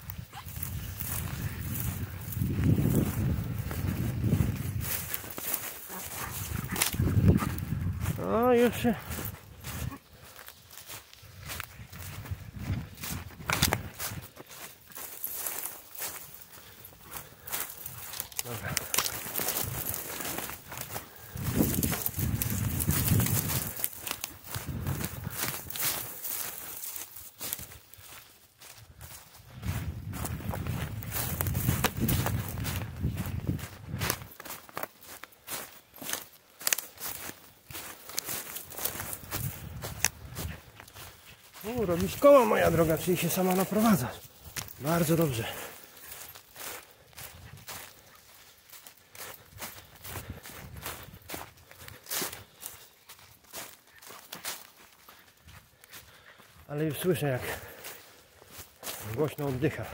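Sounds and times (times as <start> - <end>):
footsteps through dry leaves: 0.0 - 59.9
heavy breathing: 16.0 - 26.8, 45.3 - 47.2, 55.6 - 56.7, 57.3 - 58.5.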